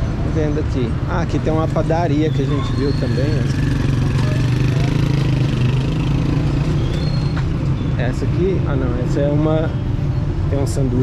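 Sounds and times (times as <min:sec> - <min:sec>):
traffic engine drone: 0:00.0 - 0:11.0.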